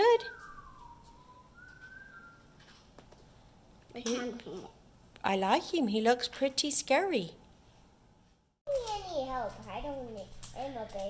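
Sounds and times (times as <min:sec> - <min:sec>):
faint whistling: 0:00.0 - 0:02.7.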